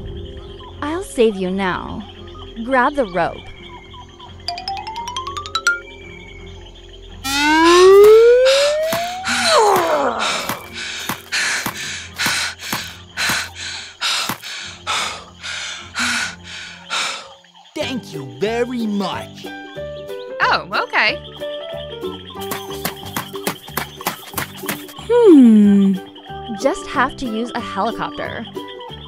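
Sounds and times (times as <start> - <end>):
background music: 0.0 - 29.0
gliding whistle-like tone: 7.2 - 9.6
rising run of ticks: 7.2 - 15.1.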